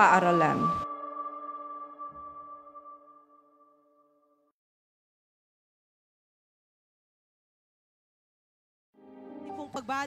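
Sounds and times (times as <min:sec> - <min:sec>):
held music chord ringing: 0:00.0 - 0:04.4.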